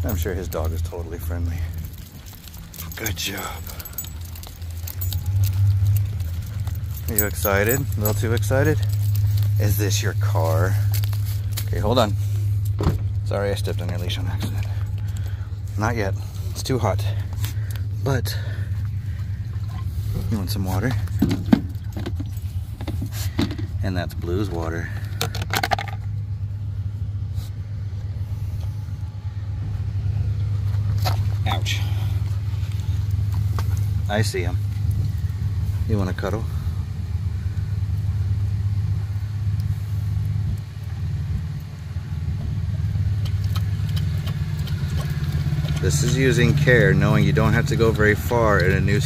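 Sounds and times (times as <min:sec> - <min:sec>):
car keys jingling: 0:00.0 - 0:15.9
low rumble: 0:00.0 - 0:49.0
vehicle engine idling: 0:00.0 - 0:49.0
dog lapping water: 0:43.2 - 0:46.8.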